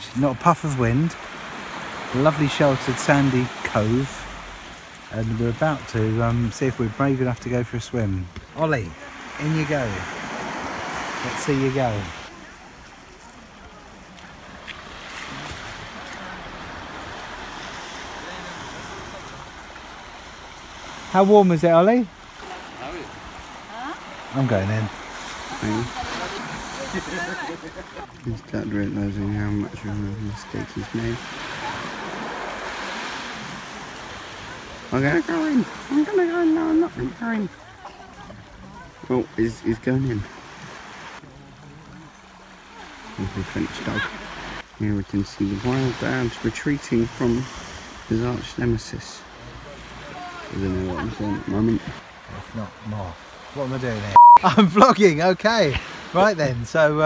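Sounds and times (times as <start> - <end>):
small waves washing on shore: 0.0 - 57.0.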